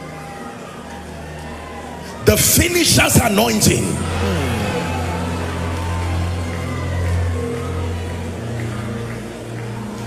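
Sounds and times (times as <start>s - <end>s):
sustained low chords: 3.2s - 9.8s.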